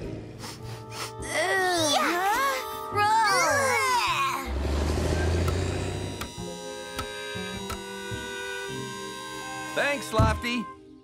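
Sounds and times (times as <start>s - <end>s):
cartoon music held chords: 0.4s - 11.0s.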